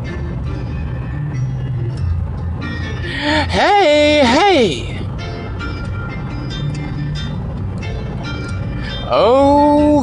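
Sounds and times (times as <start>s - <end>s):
car cabin road noise: 0.0s - 10.0s
piano music: 0.0s - 10.0s.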